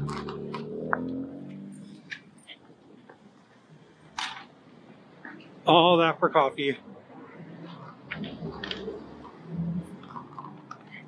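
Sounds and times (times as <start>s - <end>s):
car engine hum: 0.0s - 11.0s.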